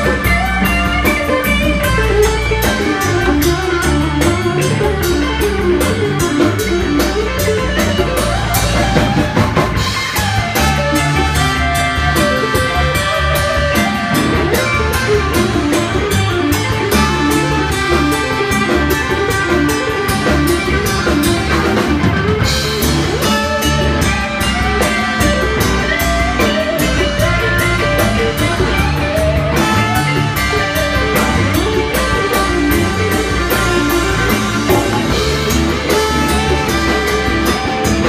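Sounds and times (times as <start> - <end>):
bass guitar: 0.0 - 38.0
congas: 0.0 - 38.0
drum kit: 0.0 - 38.0
electric guitar: 0.0 - 38.0
trumpet: 10.2 - 13.9, 16.9 - 19.0, 23.1 - 24.3, 33.5 - 38.0.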